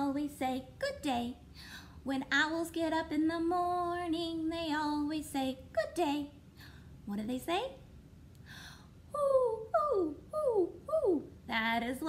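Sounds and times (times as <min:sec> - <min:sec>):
woman imitating owl hoot: 0:09.1 - 0:11.4.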